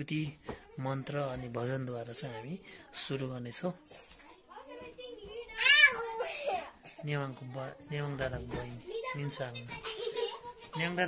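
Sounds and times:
young child's voice: 0:05.2 - 0:06.7.

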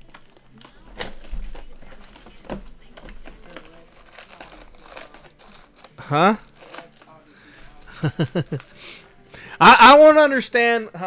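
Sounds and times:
plastic shrink-wrap crinkling and tearing: 0:00.0 - 0:09.3.

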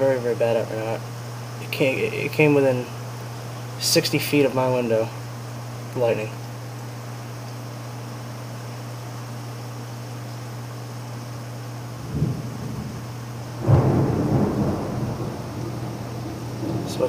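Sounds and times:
steady low hum: 0:00.0 - 0:17.0
thunder rumbling: 0:12.0 - 0:17.0.

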